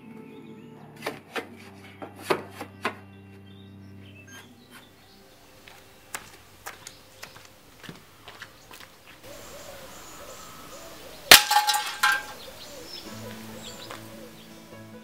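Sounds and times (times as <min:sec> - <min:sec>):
acoustic guitar music: 0:00.0 - 0:07.7, 0:12.2 - 0:15.0
pellet clanging on tin mug: 0:11.3 - 0:12.4.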